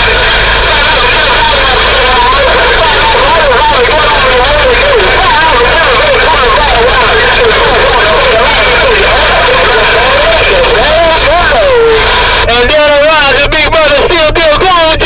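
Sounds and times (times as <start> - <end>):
garbled warbling radio voice: 0.0 - 15.0
low hum: 0.0 - 15.0
radio static: 0.0 - 15.0.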